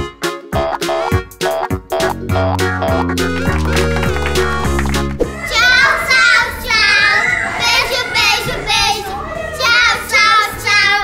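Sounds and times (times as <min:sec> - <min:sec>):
background music: 0:00.0 - 0:11.0
children singing and shouting: 0:03.4 - 0:11.0.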